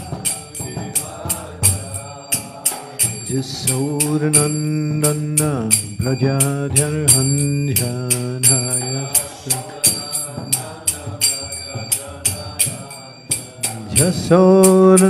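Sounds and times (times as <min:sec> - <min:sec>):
man chanting mantra: 0:00.0 - 0:15.0
small hand cymbals: 0:00.0 - 0:15.0.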